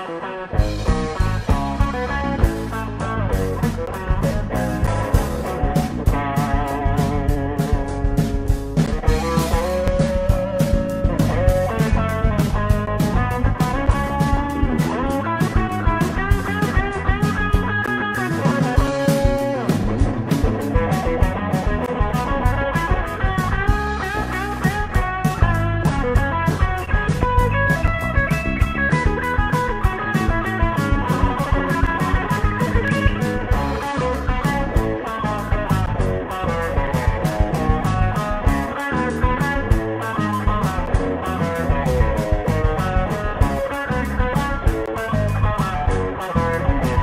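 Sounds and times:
bass guitar: 0:00.0 - 0:47.0
drum kit: 0:00.0 - 0:47.0
electric guitar melody: 0:00.0 - 0:47.0.

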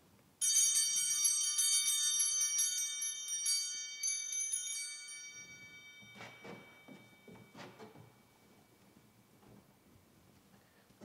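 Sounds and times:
small hand bells jingling: 0:00.4 - 0:08.8.

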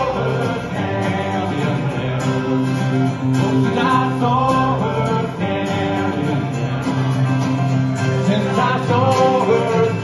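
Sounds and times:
acoustic guitars strumming: 0:00.0 - 0:10.0
man singing through a pa: 0:03.4 - 0:06.8, 0:08.3 - 0:10.0.

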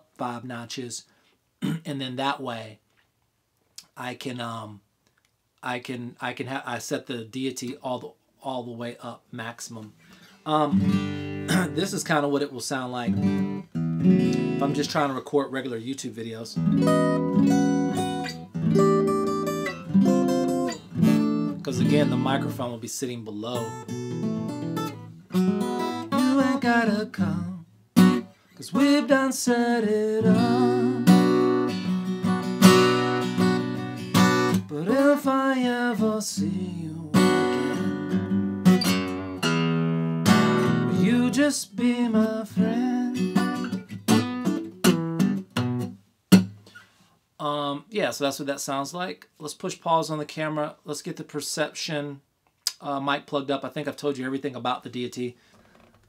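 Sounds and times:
acoustic guitar chords ringing: 0:10.7 - 0:12.0, 0:13.2 - 0:14.9, 0:16.6 - 0:22.6, 0:23.6 - 0:46.6.

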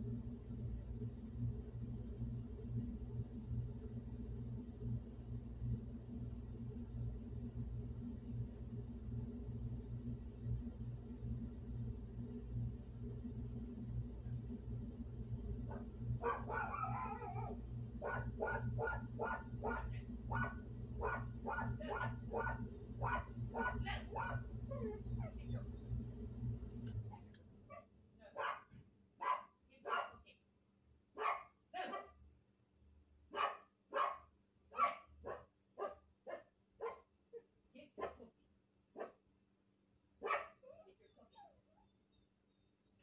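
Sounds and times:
air conditioner humming: 0:00.0 - 0:30.3
dog barking: 0:15.7 - 0:25.6, 0:27.7 - 0:30.2, 0:31.2 - 0:32.2, 0:33.3 - 0:37.1, 0:38.0 - 0:38.3, 0:39.0 - 0:39.2, 0:40.2 - 0:40.9.

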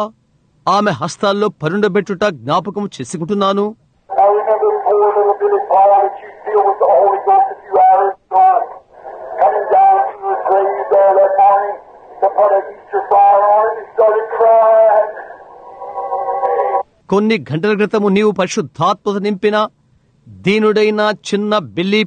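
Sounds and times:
person speaking: 0:01.6 - 0:18.0.

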